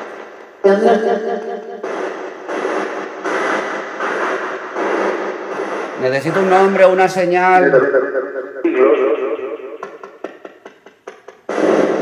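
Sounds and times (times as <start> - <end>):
radio static hissing: 0.0 - 12.0.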